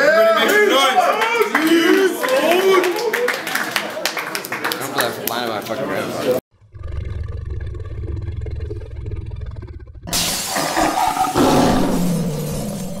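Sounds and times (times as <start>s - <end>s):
lion growling and roaring: 6.6s - 13.0s.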